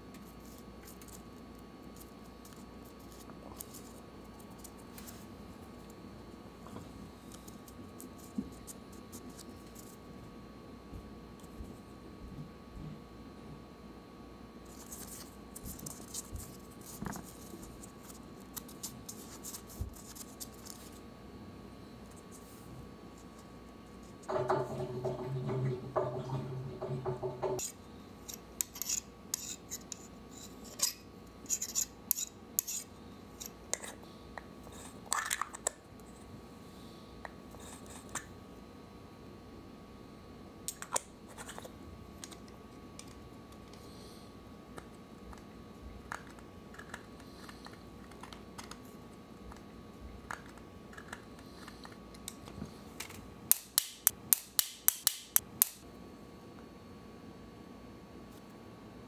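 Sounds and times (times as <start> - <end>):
low steady hum: 0.0 - 59.0.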